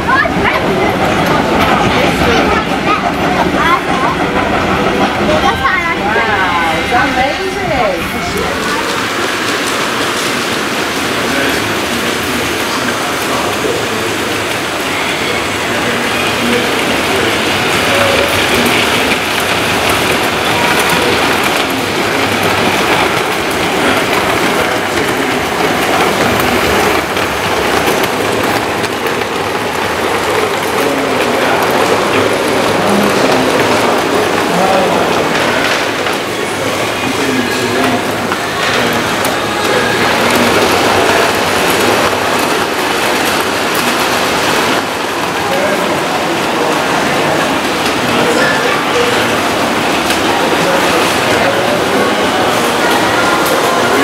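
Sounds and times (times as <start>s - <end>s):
model train wheels clattering: 8.2s - 54.0s.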